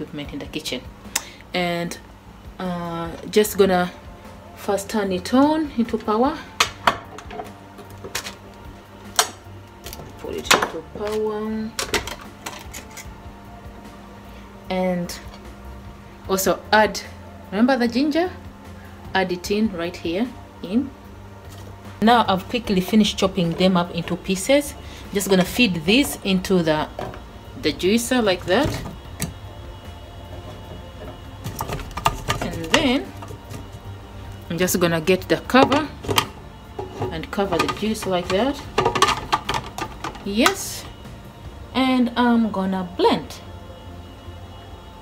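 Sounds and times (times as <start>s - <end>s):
washing machine humming: 22.0s - 41.7s.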